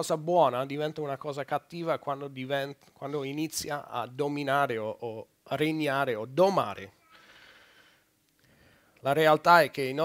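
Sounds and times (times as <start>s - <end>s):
faint breathing: 7.0s - 9.0s.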